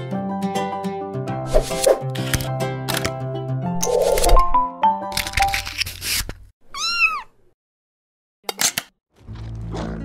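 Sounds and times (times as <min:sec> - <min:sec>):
cat meowing: 0:06.7 - 0:07.4.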